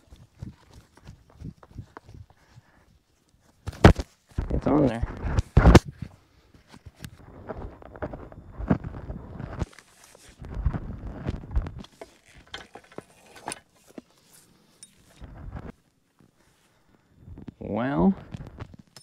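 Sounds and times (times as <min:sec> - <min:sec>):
footsteps: 0:00.0 - 0:16.8
rustling handling noise: 0:00.0 - 0:19.0
metallic clicks and clinks: 0:14.7 - 0:15.2.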